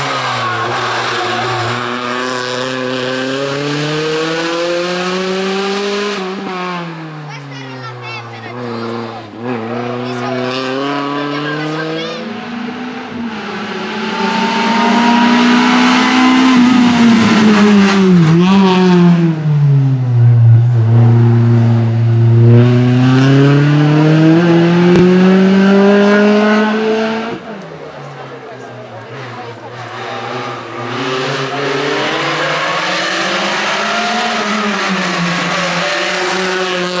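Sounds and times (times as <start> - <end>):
race car engine revving: 0.0 - 37.0.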